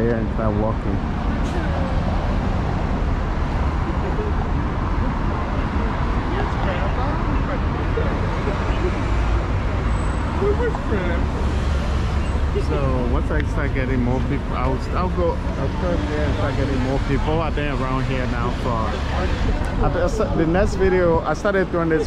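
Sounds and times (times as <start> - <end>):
people talking: 0.0 - 2.0, 3.9 - 4.5, 5.4 - 11.3, 12.5 - 22.0
traffic rumble: 0.0 - 22.0.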